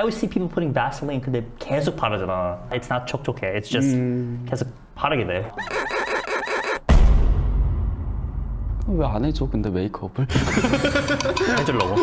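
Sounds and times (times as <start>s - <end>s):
pulsing sound effect: 5.5s - 6.9s
deep bass boom: 6.9s - 9.6s.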